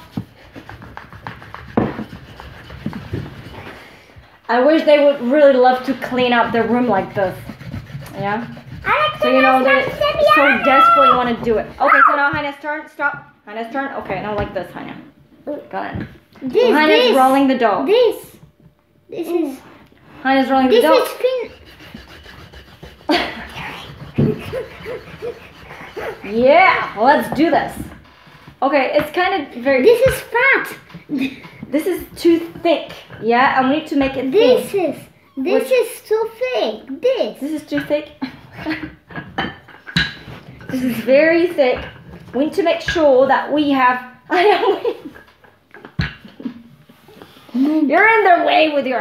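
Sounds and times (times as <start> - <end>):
rolling pin rubbing on dough: 0.0 - 13.0, 19.2 - 39.0, 46.4 - 48.9.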